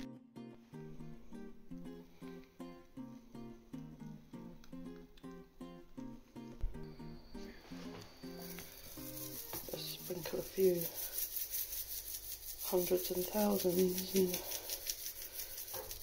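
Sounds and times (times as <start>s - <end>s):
guitar picking pattern: 0.0s - 9.6s.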